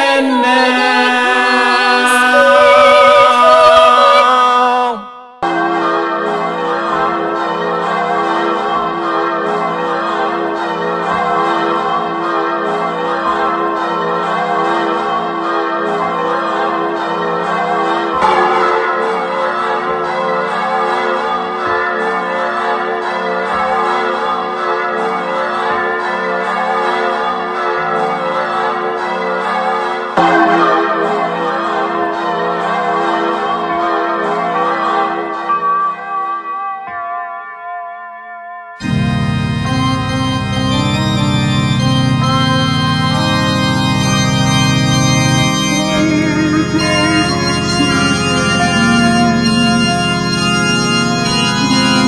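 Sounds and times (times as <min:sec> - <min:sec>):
carillon bells ringing: 0:16.4 - 0:24.6, 0:30.2 - 0:37.9, 0:38.8 - 0:52.0.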